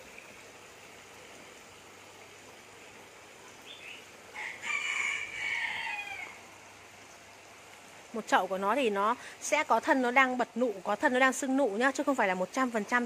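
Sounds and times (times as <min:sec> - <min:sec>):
faint steady hiss: 0:00.0 - 0:13.0
rooster crowing: 0:04.3 - 0:06.5.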